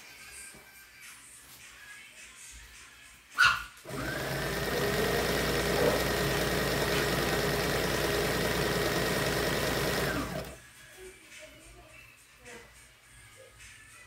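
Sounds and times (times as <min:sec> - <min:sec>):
sewing machine stitching: 0:03.9 - 0:10.6.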